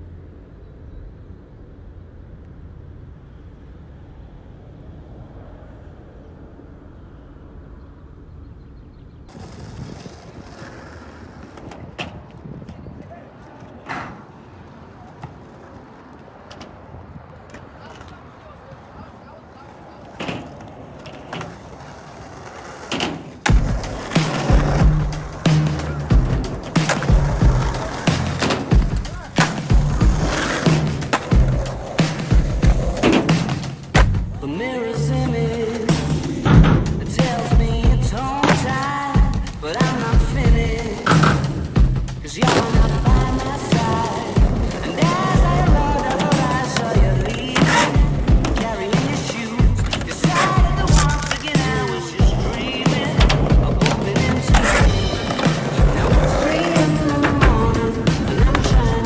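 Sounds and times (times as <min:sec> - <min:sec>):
skateboard wheels rolling on asphalt: 0:00.0 - 0:59.0
music with heavy bass beat: 0:23.6 - 0:34.4, 0:35.9 - 0:38.4, 0:39.2 - 0:42.2, 0:49.6 - 0:59.0
skateboard clacks and knocks: 0:36.4 - 0:59.0
skateboard sliding on metal rail: 0:42.4 - 0:59.0.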